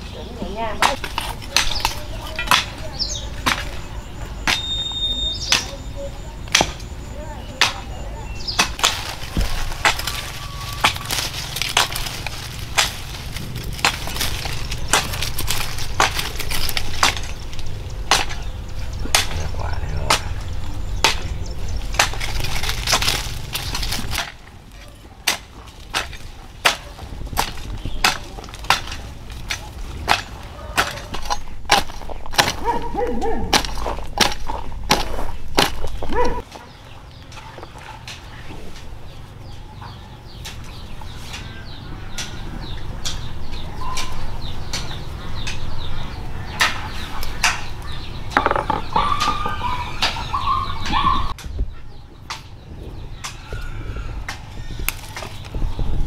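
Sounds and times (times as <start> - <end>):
hoe chopping dry soil: 7.5 - 24.6, 25.2 - 36.6
plant stems snapping: 8.5 - 19.5, 20.1 - 36.4, 54.2 - 55.6.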